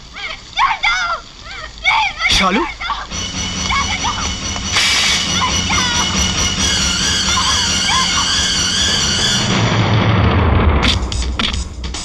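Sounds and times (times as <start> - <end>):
film score sustained high chord: 2.4 - 10.1
short high cries: 5.0 - 9.5.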